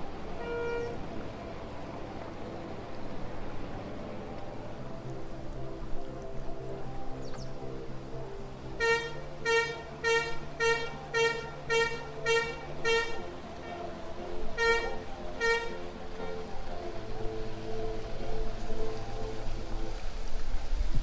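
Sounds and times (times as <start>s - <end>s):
horn tooting short blasts: 0.4s - 1.0s, 8.8s - 13.8s, 14.6s - 16.4s.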